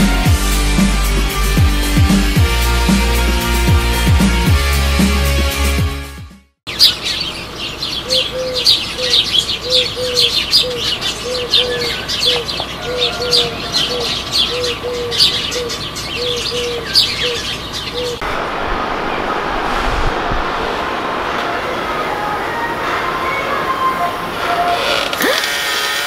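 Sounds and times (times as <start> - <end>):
songbirds chirping: 6.7 - 18.2
steady rushing noise: 18.2 - 24.7.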